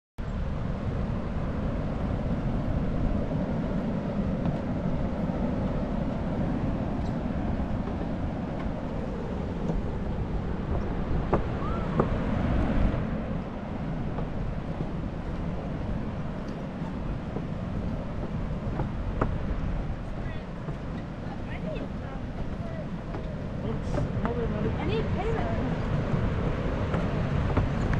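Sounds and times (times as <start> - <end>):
wind buffeting microphone: 0.2 - 27.9
footsteps on wooden boardwalk: 3.0 - 27.9.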